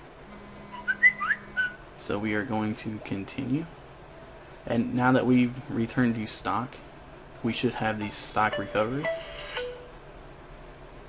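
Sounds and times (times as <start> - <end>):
faint low hum: 0.0 - 11.0
whistle-like chirps: 0.7 - 1.8.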